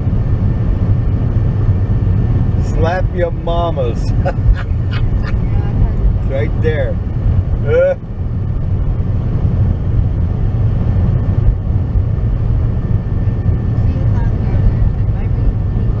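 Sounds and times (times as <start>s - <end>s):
car cabin road and wind rumble: 0.0s - 16.0s.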